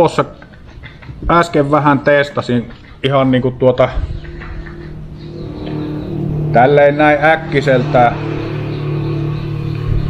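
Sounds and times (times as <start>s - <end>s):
steady low hum: 2.6s - 10.0s.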